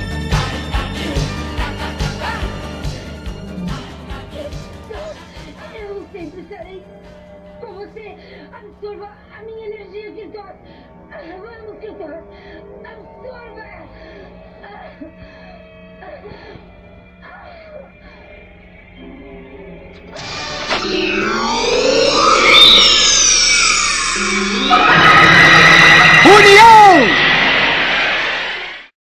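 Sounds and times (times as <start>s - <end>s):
music: 0.0s - 25.3s, 26.2s - 27.1s
sweeping electronic sound effects: 20.0s - 28.9s.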